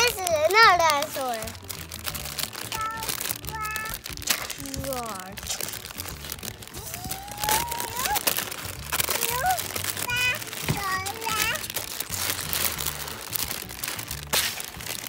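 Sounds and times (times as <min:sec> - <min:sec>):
plastic bags crinkling: 0:00.0 - 0:15.0
child vocalizing: 0:02.7 - 0:04.6, 0:06.8 - 0:08.4, 0:09.0 - 0:11.6.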